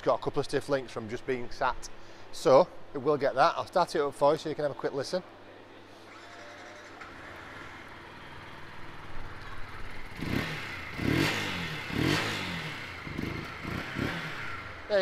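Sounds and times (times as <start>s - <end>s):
motorcycle engine idling and revving: 6.2s - 15.0s.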